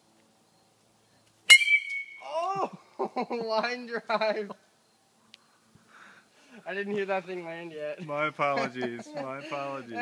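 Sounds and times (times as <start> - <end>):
man shouting: 2.2 - 2.8.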